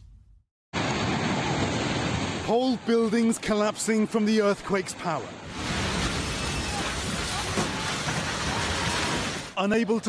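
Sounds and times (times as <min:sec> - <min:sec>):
falling masonry and debris: 0:05.6 - 0:09.6.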